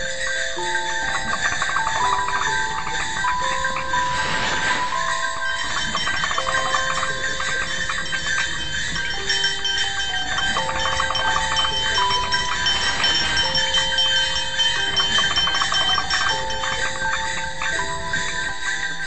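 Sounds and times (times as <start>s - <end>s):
fast jingling rattle: 0.0s - 19.0s
held electronic tones melody: 0.0s - 19.0s
steady high tones: 0.0s - 19.0s.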